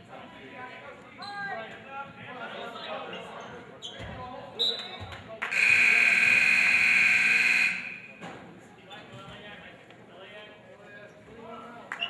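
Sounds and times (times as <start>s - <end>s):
crowd chatter: 0.0s - 12.0s
scoreboard horn blast: 5.5s - 8.1s.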